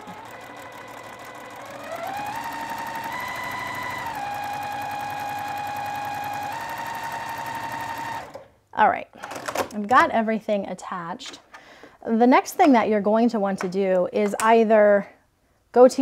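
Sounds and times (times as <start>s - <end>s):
sewing machine stitching: 0.0s - 8.5s.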